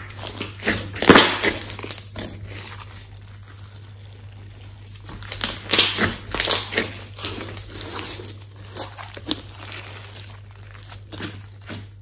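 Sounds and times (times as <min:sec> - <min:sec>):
slime squelching by hand: 0:00.0 - 0:12.0.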